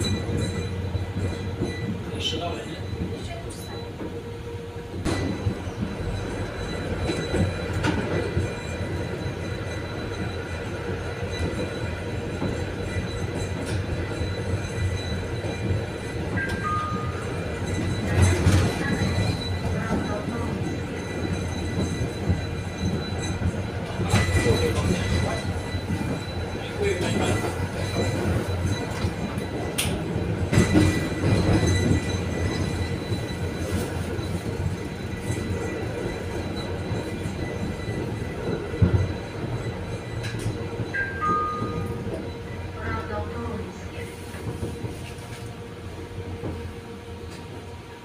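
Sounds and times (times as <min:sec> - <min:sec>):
tram wheels rumbling on rails: 0:00.0 - 0:48.0.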